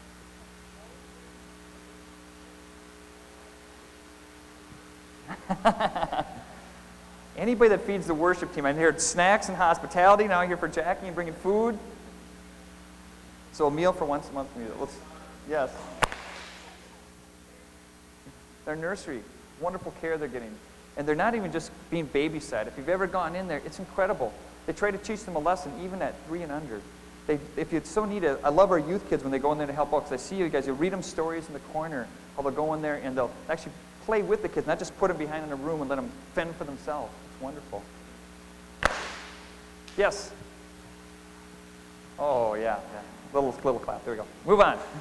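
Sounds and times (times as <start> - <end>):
room hum: 0.0 - 45.0
congregation clapping once: 16.0 - 16.8, 38.8 - 39.4
congregation clapping in unison: 38.8 - 39.4.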